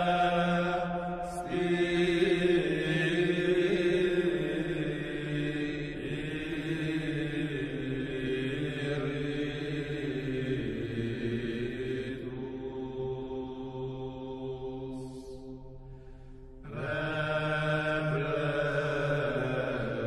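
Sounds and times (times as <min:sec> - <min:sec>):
chant-like music with held notes: 0:00.0 - 0:20.0.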